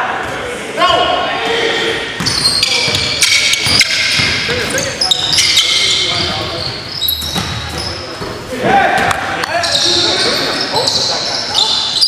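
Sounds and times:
sneaker squeaks: 2.1 - 12.0.

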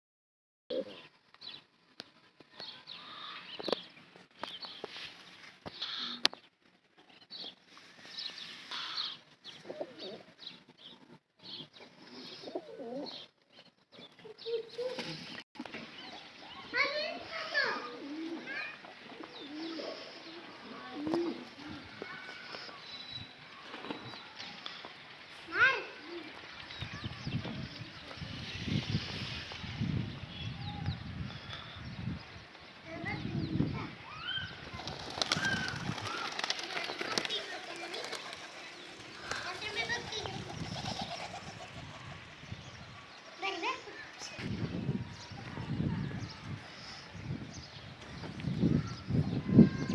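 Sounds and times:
pigeons cooing: 8.8 - 10.5, 12.0 - 13.3, 17.2 - 21.9, 35.0 - 42.4
pigeon wings clapping and flapping: 34.7 - 41.8.

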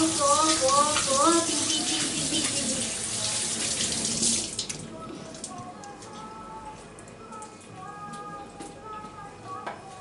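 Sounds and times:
tap water running into sink: 0.0 - 4.8.

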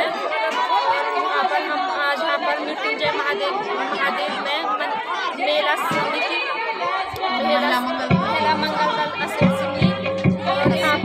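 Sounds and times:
several voices talking: 0.0 - 11.0.

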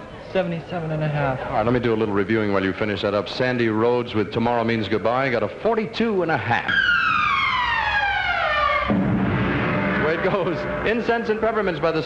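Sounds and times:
long descending whistle: 6.7 - 9.0.

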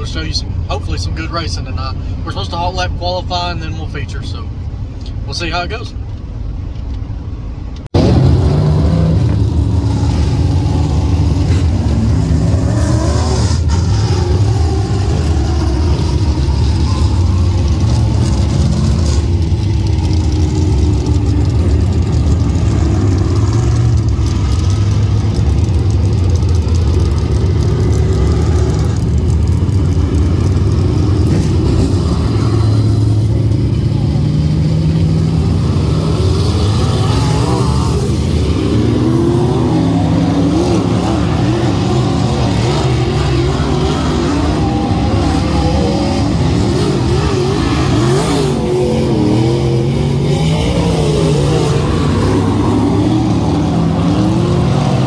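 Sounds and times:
race car engines roaring: 0.0 - 55.0.

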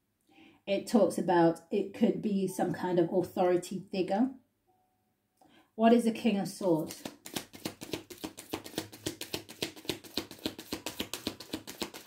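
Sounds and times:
cards being shuffled: 6.9 - 12.0.

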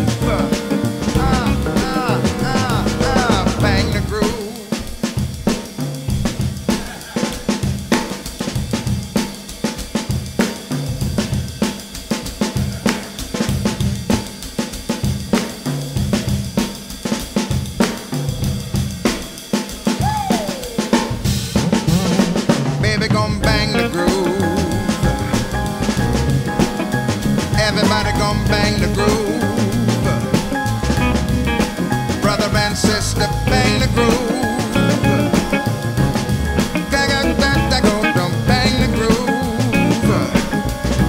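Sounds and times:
bass line: 0.0 - 4.4, 20.0 - 41.0
electric guitar: 0.0 - 8.2, 20.0 - 41.0
drum kit: 0.0 - 41.0.

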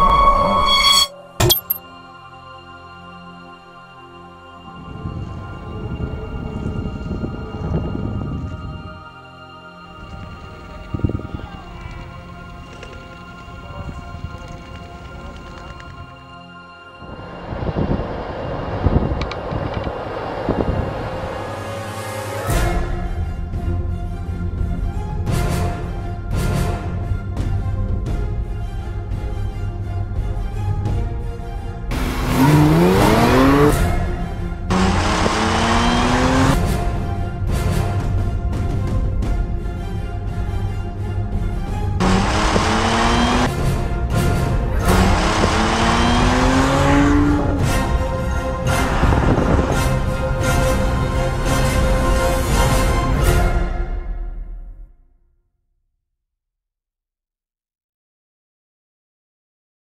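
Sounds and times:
music: 0.0 - 55.8
road and wind noise: 4.7 - 9.1, 9.9 - 16.4, 17.0 - 22.6, 30.3 - 39.6, 40.5 - 53.2
car driving by: 31.9 - 37.0, 42.0 - 52.8.

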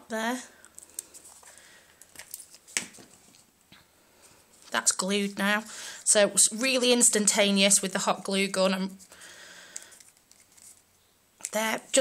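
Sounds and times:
paper rustling: 9.8 - 10.9.

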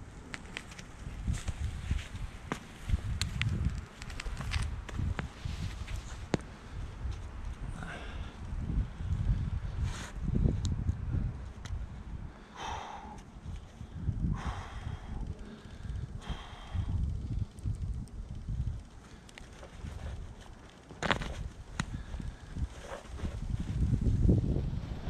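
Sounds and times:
low wind rumble on microphone: 0.0 - 25.0
hard exhalations: 7.7 - 8.4, 12.3 - 17.1
heavy strained breathing: 7.7 - 8.4, 12.3 - 17.1.

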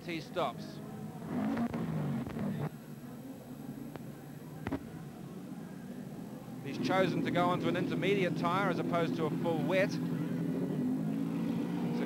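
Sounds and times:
race car engine running: 0.9 - 2.7.

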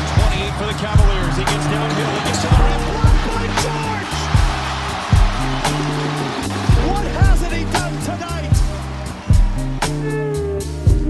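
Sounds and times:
arena crowd roar: 0.0 - 10.4
music with heavy bass beat: 0.0 - 11.0.

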